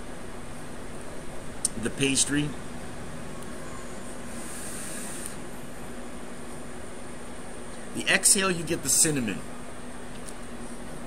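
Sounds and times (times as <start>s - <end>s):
electric fan whooshing: 0.0s - 11.0s
faint high hiss of vape: 4.3s - 5.4s.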